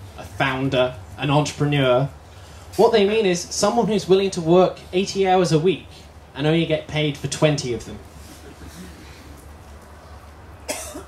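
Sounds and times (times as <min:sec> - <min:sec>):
man coughing: 0:10.7 - 0:11.0.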